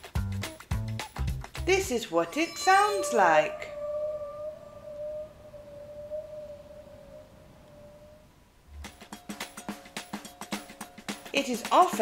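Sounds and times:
bowed waterphone eerie tone: 2.0 - 8.3.

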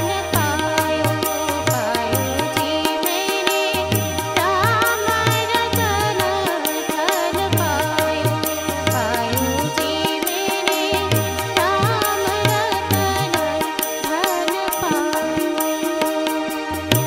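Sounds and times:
harmonium: 0.0 - 17.0
woman singing: 0.0 - 17.0.

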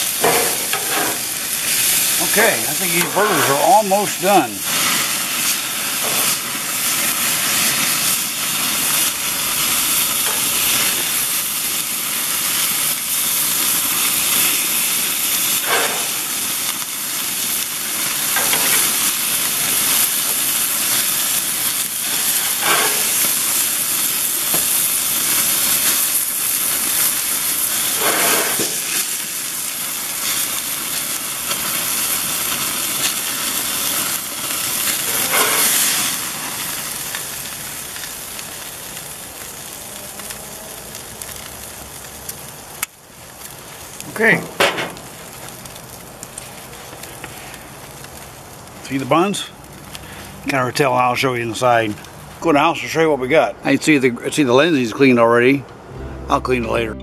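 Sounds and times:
fat hissing in fire: 0.0 - 50.5
patties sizzling on a grill: 0.0 - 56.4.

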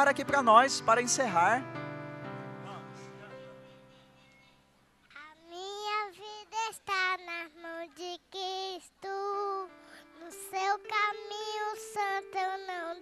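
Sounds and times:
girl singing a hymn into a microphone: 5.2 - 13.0.

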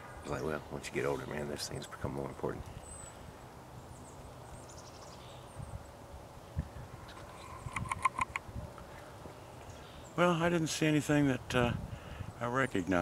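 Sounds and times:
faint outdoor background: 0.0 - 13.0
woodpecker tapping: 7.1 - 8.5.

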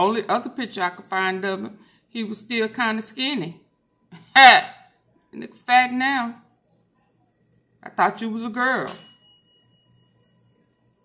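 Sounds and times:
bell-like ding: 8.9 - 10.5.

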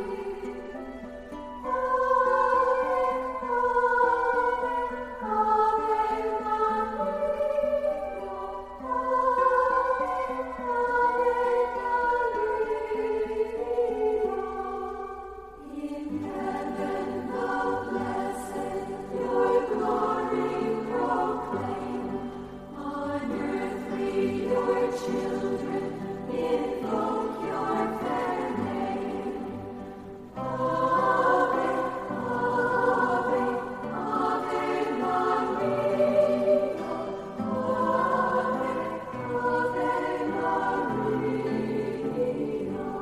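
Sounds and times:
choir singing a hymn: 0.0 - 43.0.

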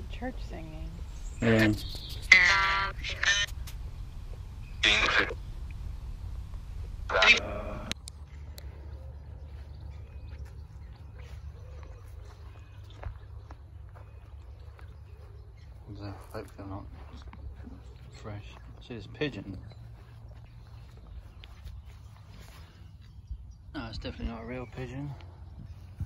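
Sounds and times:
low hum from phone speaker: 0.0 - 26.0
quiet outdoor ambience: 0.0 - 26.0.

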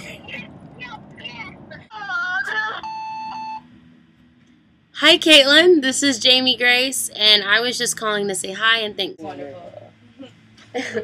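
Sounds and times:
voicemail beep: 2.8 - 3.6
person laughing: 10.7 - 11.0.

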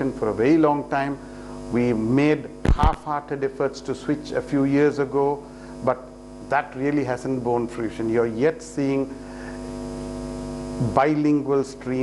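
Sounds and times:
man speaking: 0.0 - 9.2, 10.8 - 12.0.

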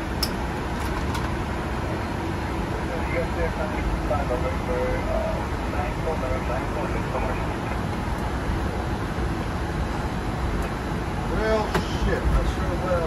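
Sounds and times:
cockpit low rumble and hiss: 0.0 - 13.0.

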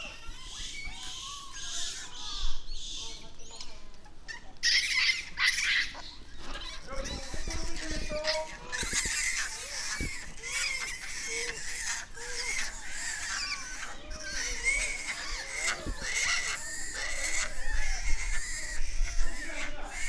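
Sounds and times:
macaques squeaking and cooing: 0.0 - 20.0.

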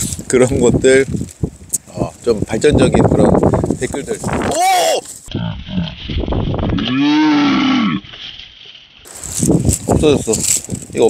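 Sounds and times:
short voiced sounds: 4.4 - 5.2
moo-like call: 6.8 - 8.1.

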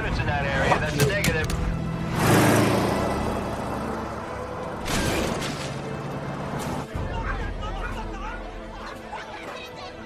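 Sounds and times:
car engine revving: 1.8 - 6.6.

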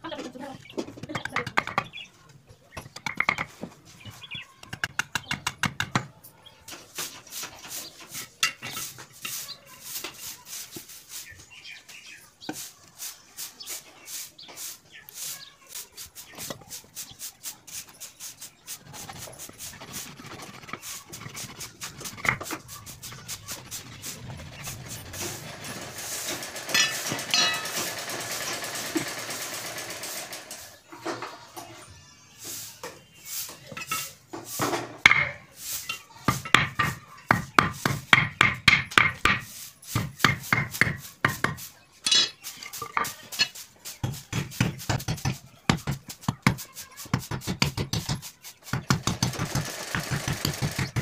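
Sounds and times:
blade scraping wooden stick: 6.7 - 11.4, 12.0 - 27.9.

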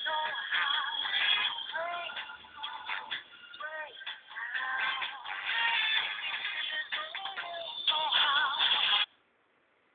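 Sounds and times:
person singing: 0.0 - 9.1
pop song: 0.0 - 9.1.

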